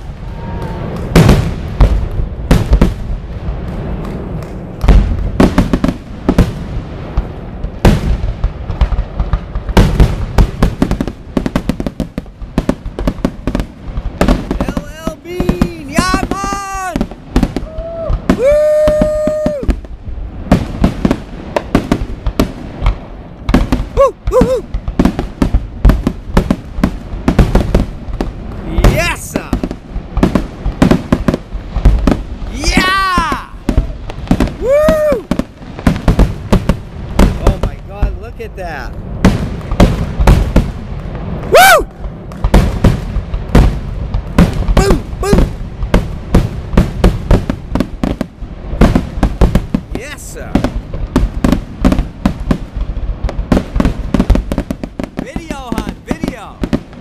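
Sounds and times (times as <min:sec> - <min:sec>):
fireworks bangs and crackles: 0:00.0 - 0:57.0.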